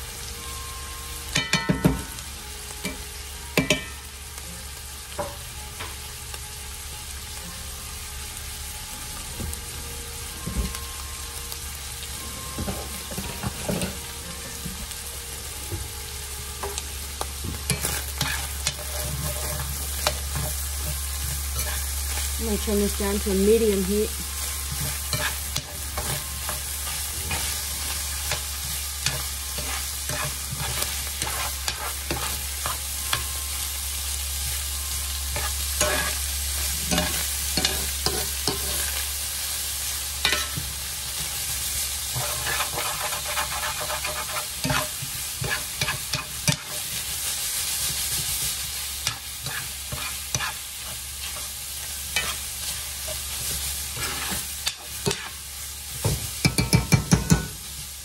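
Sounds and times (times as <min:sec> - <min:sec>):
food sizzling in a skillet: 0:00.0 - 0:58.0
metal spoon scraping a pan: 0:17.7 - 0:22.2, 0:24.4 - 0:33.3, 0:35.3 - 0:39.0, 0:42.0 - 0:47.1, 0:49.0 - 0:55.4.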